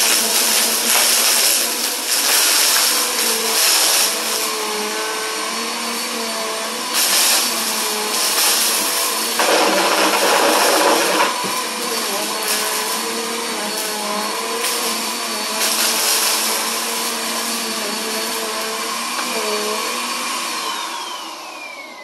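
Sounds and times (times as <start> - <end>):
vacuum sucking up crunchy debris: 0.0 - 4.6, 6.7 - 19.1
vacuum cleaner motor whine: 0.0 - 22.0.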